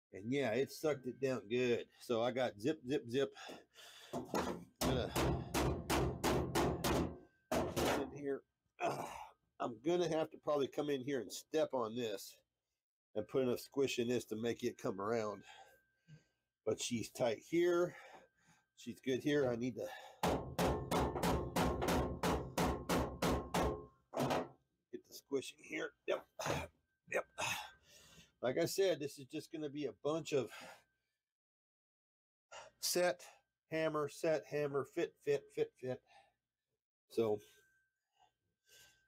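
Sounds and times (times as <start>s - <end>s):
hammer striking sheet steel: 4.3s - 8.1s, 20.2s - 24.5s.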